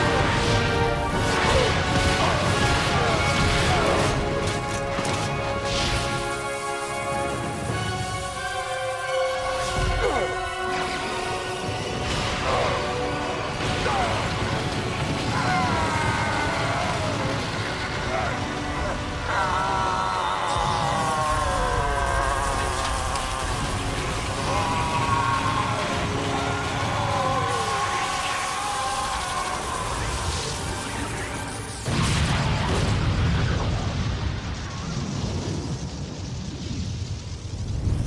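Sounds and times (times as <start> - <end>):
rushing wind rumble: 5.3 - 38.0
loud explosion with rumble: 31.7 - 38.0.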